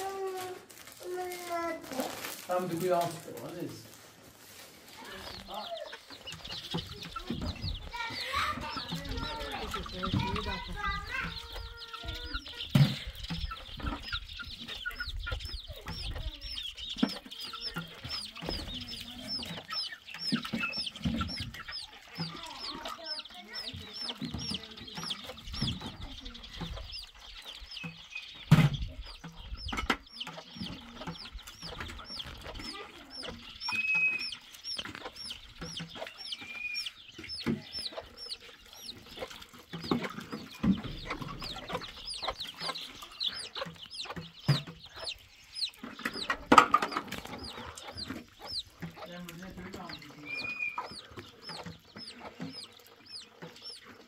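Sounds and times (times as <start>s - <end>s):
chickens clucking: 0.0s - 54.0s.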